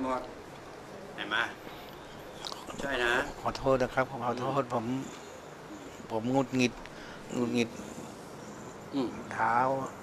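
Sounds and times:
man speaking: 0:06.1 - 0:08.0.

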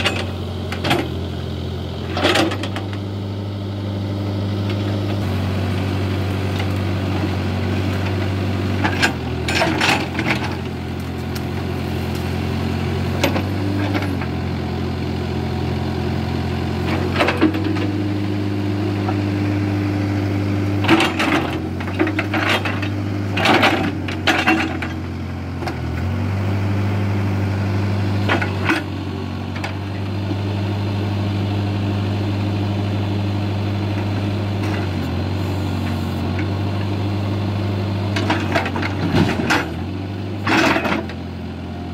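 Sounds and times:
diesel engine running: 0:00.0 - 0:41.9.

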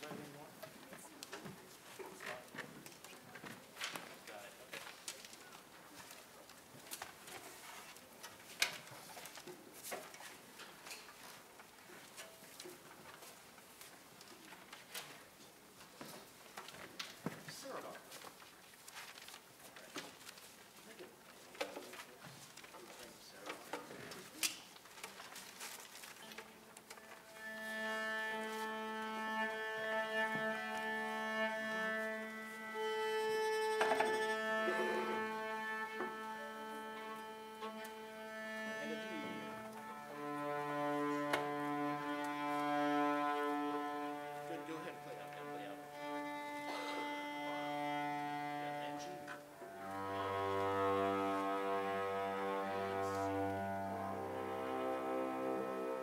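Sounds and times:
string ensemble tuning: 0:26.3 - 0:56.0.

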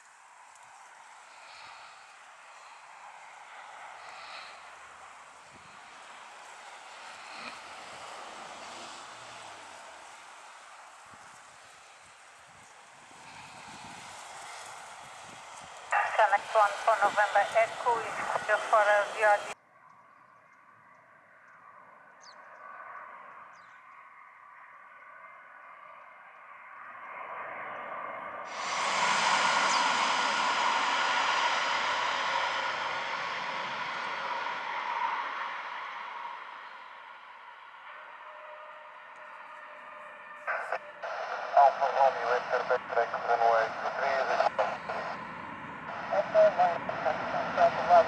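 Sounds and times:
jet engines whining: 0:00.0 - 0:19.6, 0:28.5 - 0:38.5, 0:40.5 - 0:48.0.

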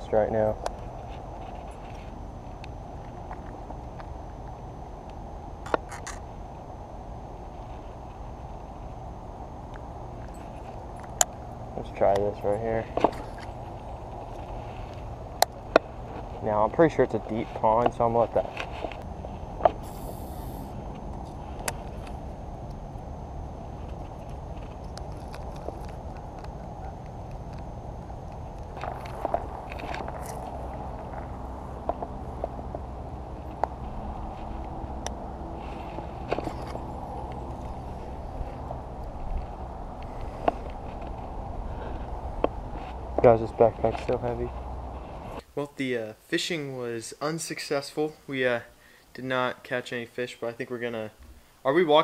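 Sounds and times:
low outdoor rumble: 0:00.0 - 0:52.0
thin high tone: 0:18.2 - 0:31.8.

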